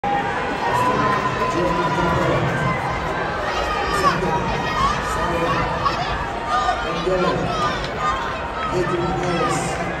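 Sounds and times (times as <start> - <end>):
large crowd talking and calling: 0.0 - 10.0.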